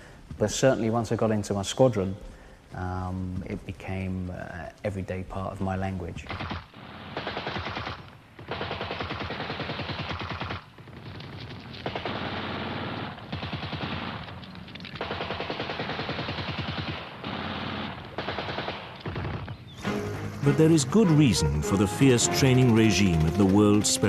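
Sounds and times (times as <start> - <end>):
automatic rifle fire: 6.3 - 19.6.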